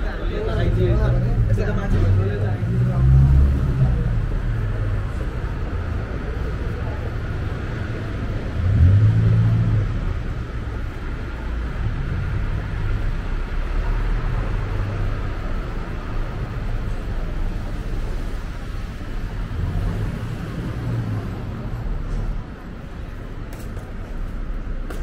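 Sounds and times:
cars passing with low rumble: 0.0 - 25.0
voices of people: 0.0 - 25.0.

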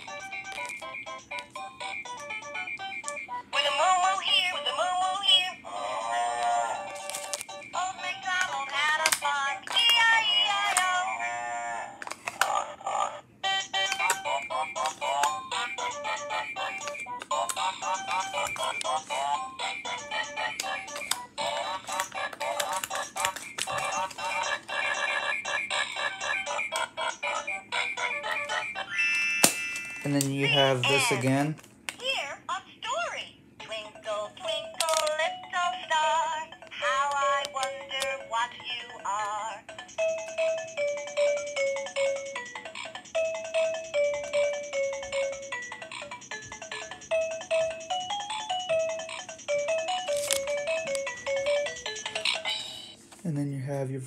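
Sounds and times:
tinny electronic toy songs: 0.0 - 31.6, 33.6 - 53.0.

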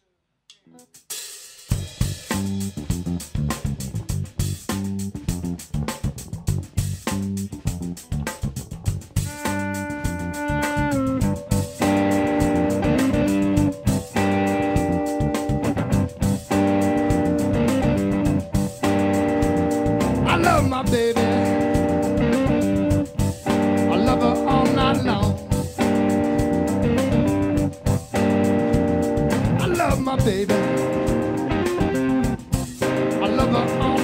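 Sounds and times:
drums with cymbals: 0.9 - 34.0
electric bass: 1.7 - 34.0
electric guitar held notes: 9.2 - 34.0.

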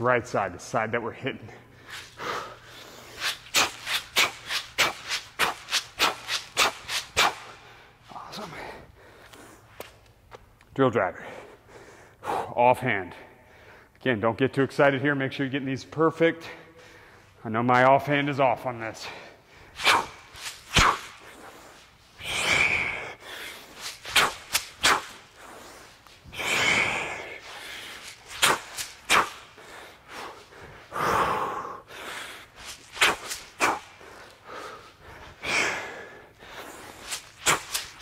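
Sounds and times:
man breathing hard: 1.7 - 3.8, 7.4 - 9.8, 11.2 - 12.6, 13.2 - 14.0, 16.5 - 17.4, 20.9 - 24.0, 25.0 - 28.3, 29.4 - 32.8, 33.5 - 38.0
short sharp clicks and scuffs: 3.1 - 7.6, 9.2 - 10.8, 19.8 - 21.8, 23.7 - 26.2, 27.4 - 29.6, 32.6 - 34.4, 36.8 - 38.0.

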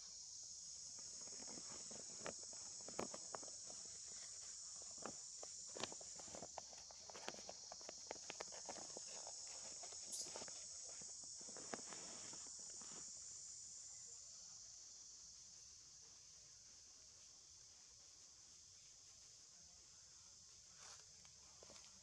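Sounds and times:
high-pitched insect drone: 0.0 - 15.9
monkeys rustling on branch: 1.0 - 12.9.

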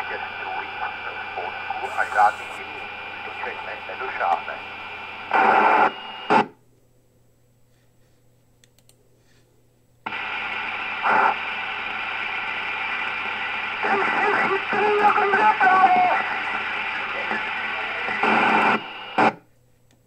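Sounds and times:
weak voice over radio: 0.0 - 5.0, 13.8 - 18.9
radio static hiss: 0.0 - 6.6, 10.0 - 19.4.

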